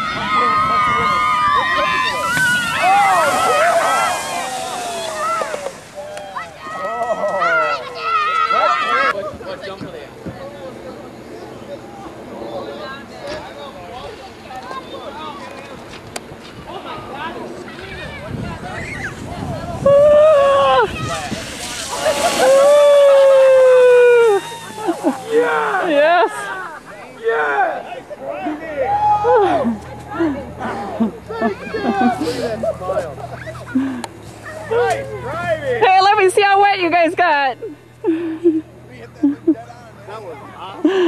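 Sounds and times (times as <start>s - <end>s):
sled splashing through slush: 0.0s - 9.1s, 16.6s - 35.7s
people screaming: 0.0s - 9.2s, 17.7s - 35.8s.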